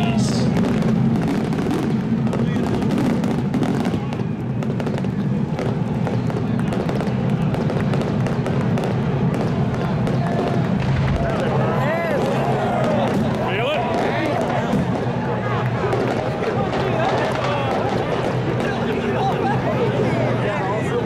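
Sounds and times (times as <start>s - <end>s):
fireworks bangs and crackles: 0.0s - 21.0s
steady low drone: 0.0s - 21.0s.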